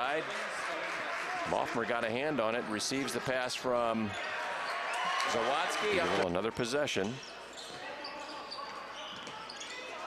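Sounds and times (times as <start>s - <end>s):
large hall background noise: 0.0s - 10.0s.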